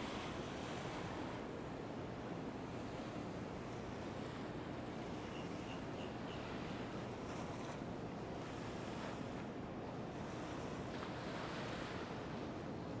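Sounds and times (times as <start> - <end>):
sea waves: 0.0 - 13.0.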